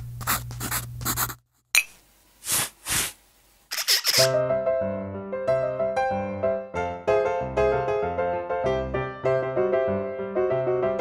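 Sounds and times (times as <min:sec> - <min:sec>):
pen scribbling on paper: 0:03.7 - 0:04.4.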